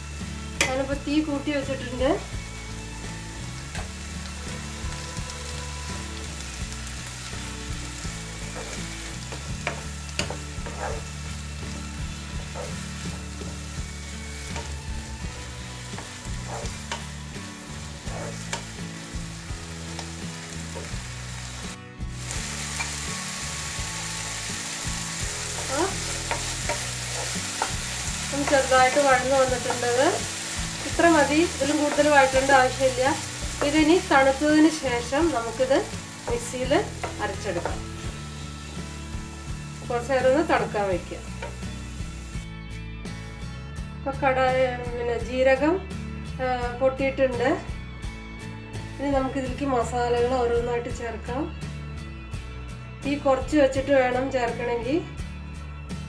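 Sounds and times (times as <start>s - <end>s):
vegetables sizzling in a wok: 0.0s - 46.0s, 46.6s - 51.8s
wooden spatula scraping a pan: 8.4s - 11.2s, 12.3s - 13.6s, 15.8s - 18.8s, 25.4s - 38.8s.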